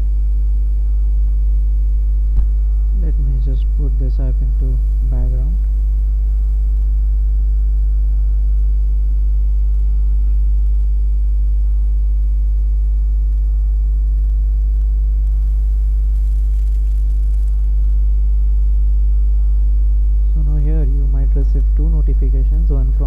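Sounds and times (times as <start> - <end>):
low electrical mains hum: 0.0 - 23.0.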